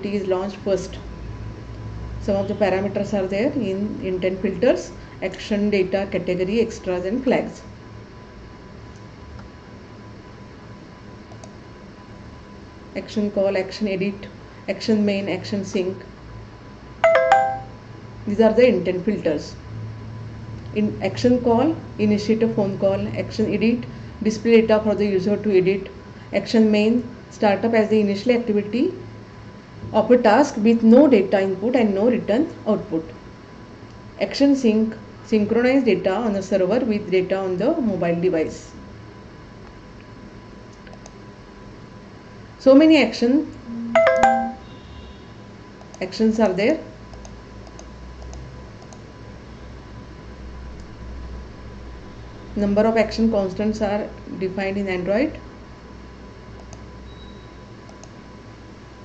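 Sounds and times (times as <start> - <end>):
electronic chime: 17.0 - 17.8, 43.7 - 44.7.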